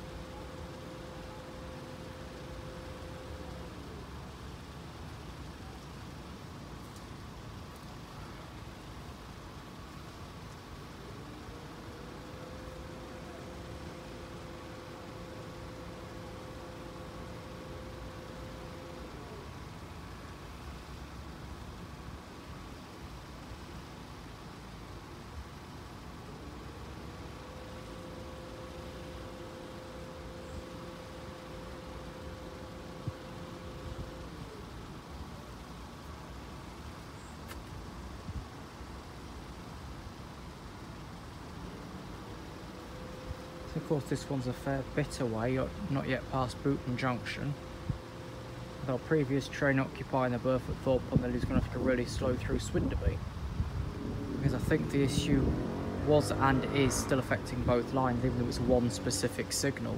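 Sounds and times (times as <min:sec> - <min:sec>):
faint two-note hum: 0:00.0 - 0:05.9, 0:10.0 - 0:22.4, 0:25.0 - 0:59.9
road traffic: 0:00.0 - 0:59.9.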